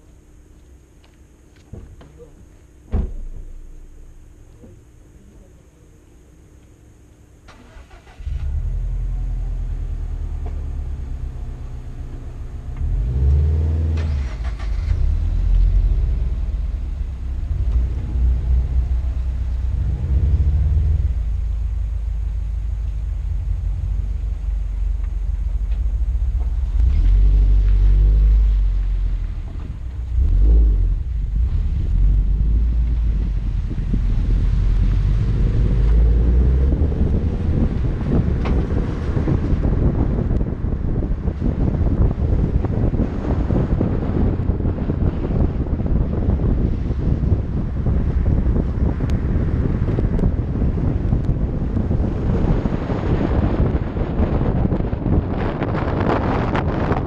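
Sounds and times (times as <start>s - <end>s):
road and wind noise: 0.0s - 57.0s
car engine starting and revving: 7.4s - 44.5s.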